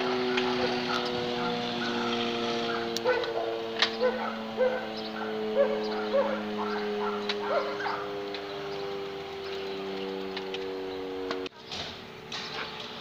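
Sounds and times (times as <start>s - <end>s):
droning tone: 0.0s - 11.6s
dog yipping and whining: 0.3s - 8.0s.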